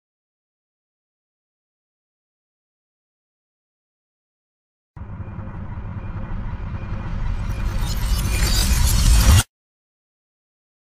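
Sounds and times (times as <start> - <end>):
low rumble: 5.0 - 9.4.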